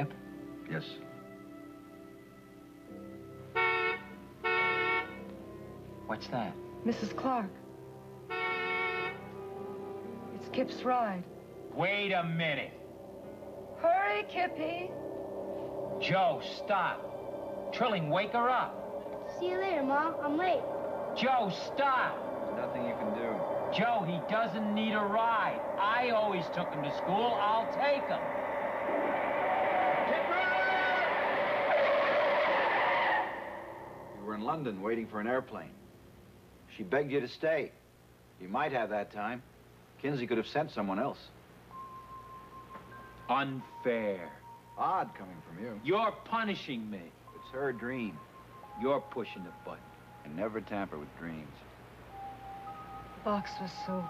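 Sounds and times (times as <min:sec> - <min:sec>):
car horn honking: 0:03.5 - 0:05.2, 0:08.3 - 0:09.4
tire squeal: 0:11.8 - 0:34.4.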